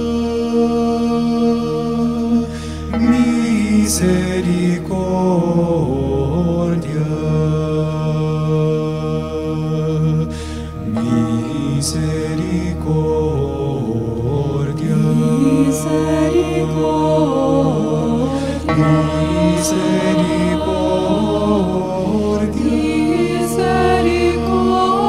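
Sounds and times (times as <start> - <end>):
choir singing long held notes: 0.0 - 25.0
low sustained bass: 0.0 - 25.0.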